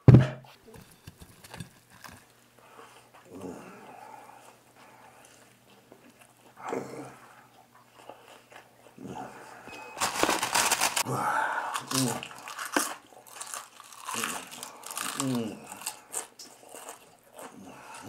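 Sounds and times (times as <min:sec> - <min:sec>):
man chewing fried food: 0:00.7 - 0:03.4, 0:04.2 - 0:09.1, 0:10.0 - 0:18.0.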